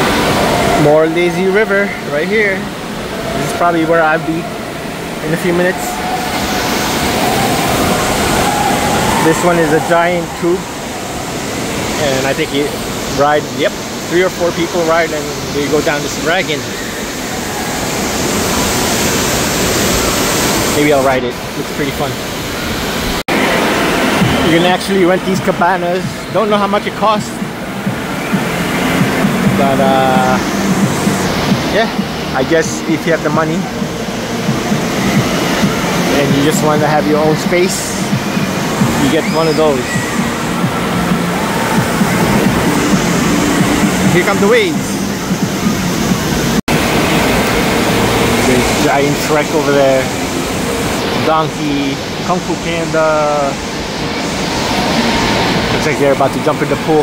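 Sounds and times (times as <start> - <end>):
wave pool surf rushing: 0.0 - 57.0.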